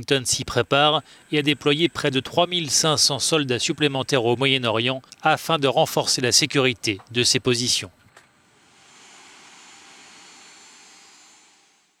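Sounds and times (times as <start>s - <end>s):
high whine: 0.0s - 12.0s.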